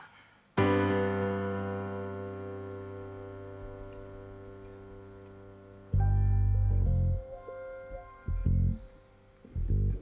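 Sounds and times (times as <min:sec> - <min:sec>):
sustained keyboard chord: 0:00.6 - 0:10.0.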